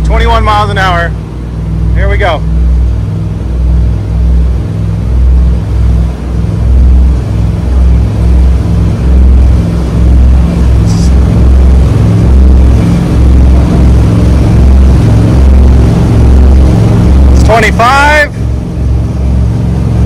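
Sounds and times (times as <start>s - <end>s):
boat engines droning: 0.0s - 20.0s.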